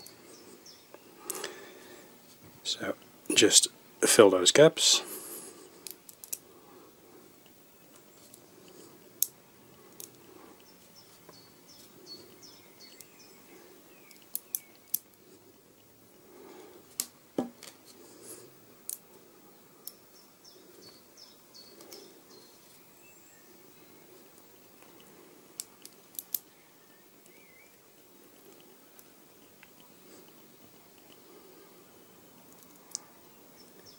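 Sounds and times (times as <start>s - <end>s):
magnet balls clicking: 5.8s - 6.5s, 8.3s - 10.7s, 24.8s - 26.5s
magnet balls clicking together: 5.8s - 6.5s, 25.5s - 26.5s.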